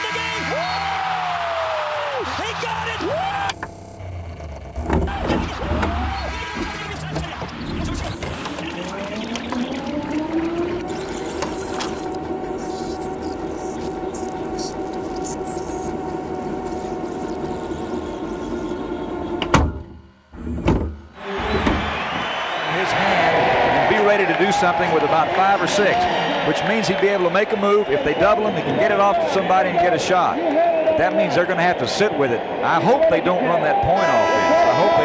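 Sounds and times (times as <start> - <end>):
tape rewind whine: 2.2 - 20.8.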